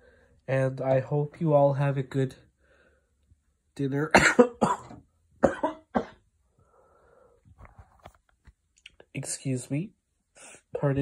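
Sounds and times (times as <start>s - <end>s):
person coughing: 4.1s - 6.2s.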